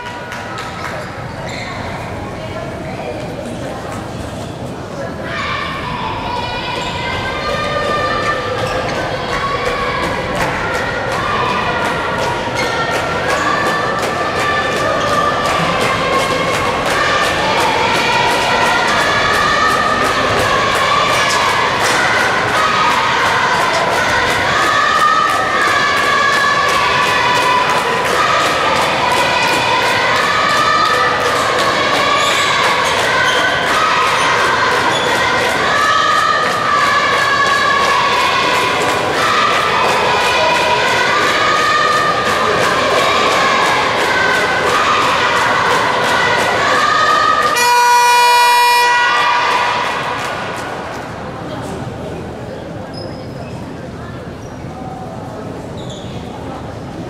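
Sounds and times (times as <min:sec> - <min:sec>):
spectators singing a cheer song: 0:05.3 - 0:51.4
long electronic buzzer: 0:47.6 - 0:49.2.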